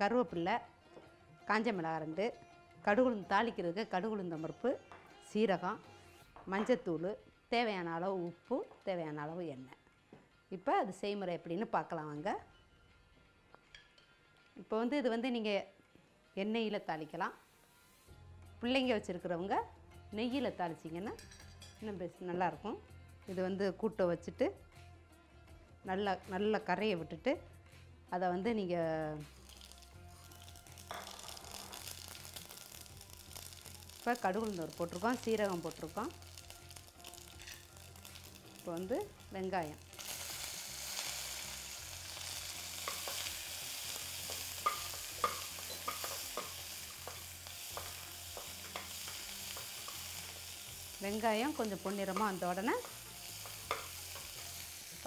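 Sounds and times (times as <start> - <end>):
spices sizzling in hot oil: 29.3 - 55.0
metal spatula stirring: 29.5 - 38.8, 44.2 - 50.3, 51.5 - 54.6
spatula tapping metal pot: 44.6 - 50.1, 51.9 - 54.3.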